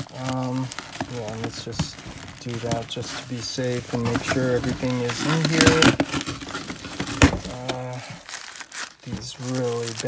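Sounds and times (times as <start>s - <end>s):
sharp paper crackle: 0.0s - 10.0s
tissue paper crinkling: 0.0s - 10.0s.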